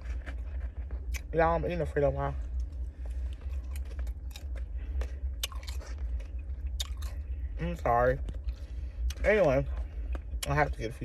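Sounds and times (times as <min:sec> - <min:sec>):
person chewing food: 0:00.0 - 0:01.4, 0:02.4 - 0:10.8
low hum: 0:00.0 - 0:11.0.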